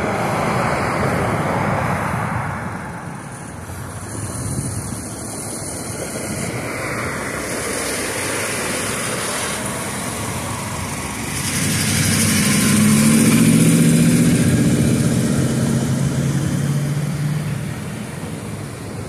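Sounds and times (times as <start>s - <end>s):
cars passing: 0.0s - 19.0s
vehicle engine hum: 0.0s - 19.0s.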